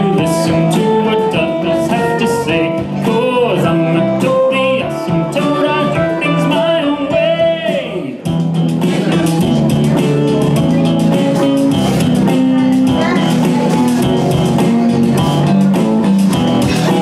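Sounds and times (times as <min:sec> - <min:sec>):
backing track with bass line: 0:00.0 - 0:17.0
electric guitar melody: 0:08.1 - 0:17.0.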